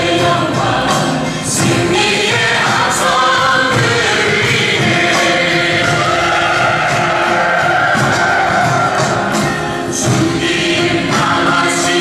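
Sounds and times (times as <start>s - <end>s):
backing music: 0.0s - 12.0s
group of voices singing: 0.0s - 12.0s.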